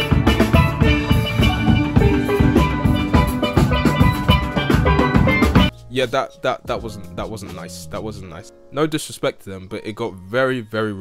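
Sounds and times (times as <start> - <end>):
steel pans playing: 0.0 - 5.9
drum kit: 0.0 - 8.1.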